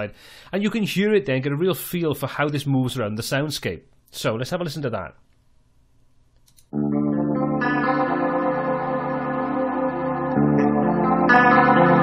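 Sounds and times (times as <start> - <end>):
guitar sustained chords: 6.7 - 12.0.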